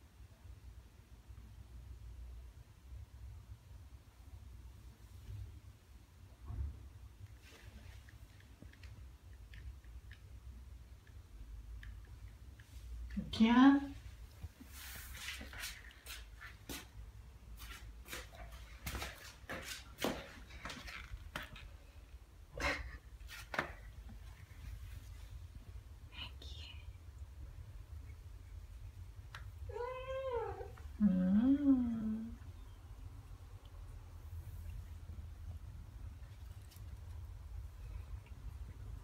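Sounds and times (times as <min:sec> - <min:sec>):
cats meowing: 0:29.7 - 0:30.9.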